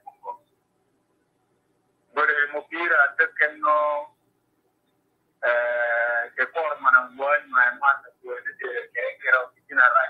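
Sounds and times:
person speaking: 0:02.2 - 0:04.1, 0:05.4 - 0:10.0.

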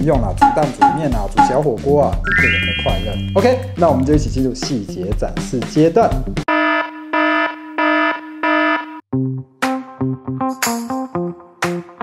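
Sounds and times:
electronic alarm beeps: 0:02.3 - 0:03.6, 0:06.5 - 0:09.0.

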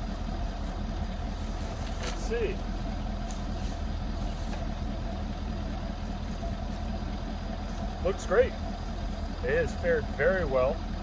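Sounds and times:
pickup truck idling: 0:00.0 - 0:11.0.

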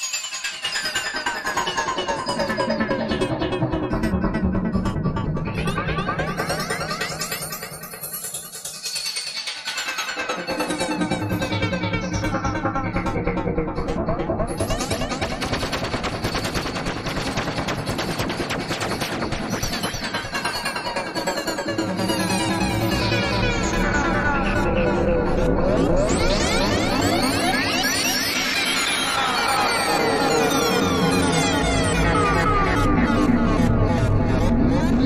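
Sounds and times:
sequenced synthesizer notes: 0:09.9 - 0:35.0.

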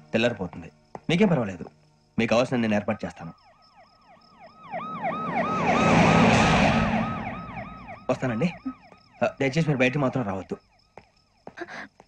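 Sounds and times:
siren yelping: 0:03.3 - 0:10.7
vehicle passing: 0:04.6 - 0:08.4.

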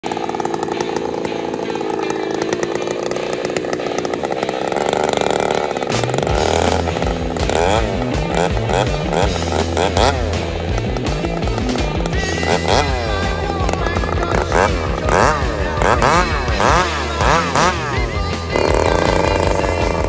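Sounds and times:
chainsaw cutting log: 0:00.0 - 0:20.0
music with stepped bass line: 0:05.8 - 0:20.0.

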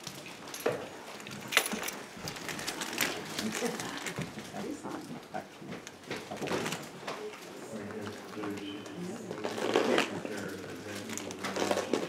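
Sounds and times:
footsteps in a room: 0:00.0 - 0:10.9.

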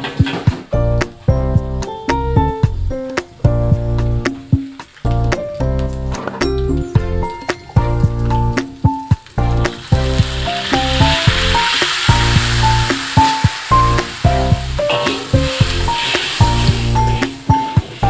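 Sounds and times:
background music: 0:00.0 - 0:18.0
hot wok sizzling: 0:00.0 - 0:18.0
water poured into wok: 0:09.2 - 0:18.0.

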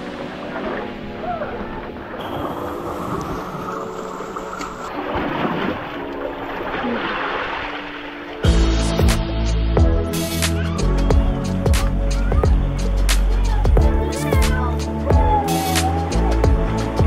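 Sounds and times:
faint background music: 0:00.0 - 0:17.0
seawater sloshing against rocks: 0:01.8 - 0:08.4.

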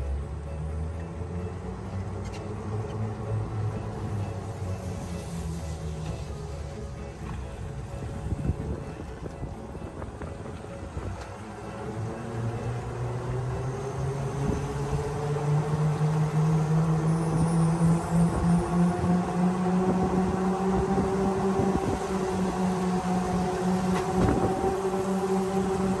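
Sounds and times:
wind: 0:00.0 - 0:26.0
tyres hissing on wet road: 0:04.0 - 0:07.9.

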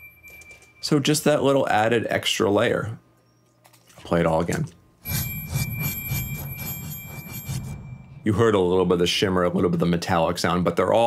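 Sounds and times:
steady high ringing tone: 0:00.0 - 0:01.3, 0:05.0 - 0:08.9
glass and metal scraping: 0:05.0 - 0:08.4
synthesizer shimmer: 0:05.0 - 0:08.6
low pulsing rumble: 0:05.3 - 0:08.8.

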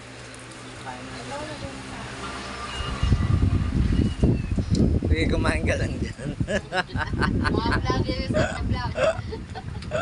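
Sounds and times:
low rumbling on microphone: 0:02.8 - 0:10.0.

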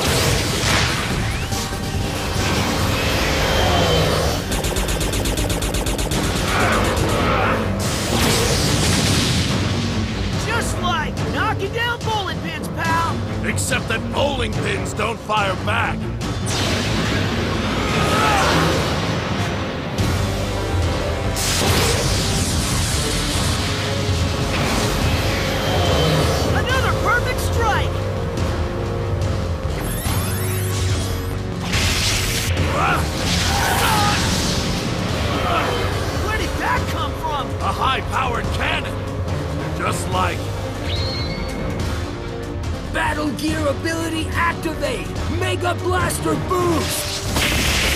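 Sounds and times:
dramatic background music: 0:00.0 - 0:47.9.

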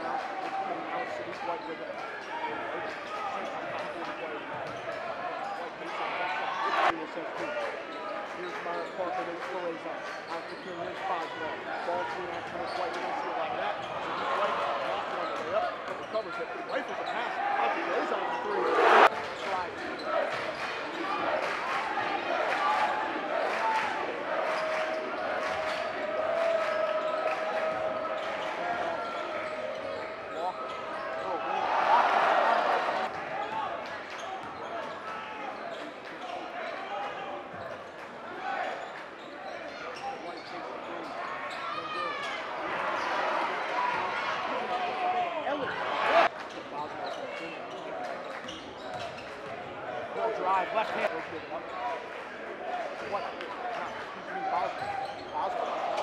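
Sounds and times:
spectators' voices: 0:00.0 - 0:56.0
sneakers squeaking: 0:34.2 - 0:35.0, 0:38.8 - 0:43.3, 0:45.6 - 0:49.7, 0:54.6 - 0:56.0.

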